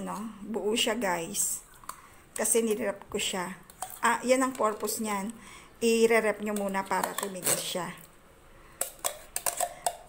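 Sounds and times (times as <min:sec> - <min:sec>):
tin can clinking on metal bowl: 0:08.8 - 0:10.0.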